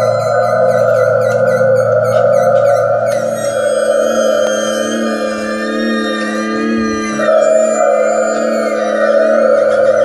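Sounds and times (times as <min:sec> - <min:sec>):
drone of held tones: 0:00.0 - 0:10.0.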